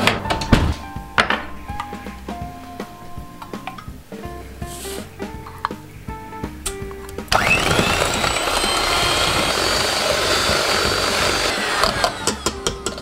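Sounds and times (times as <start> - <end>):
electric hand mixer whining: 7.3 - 12.8.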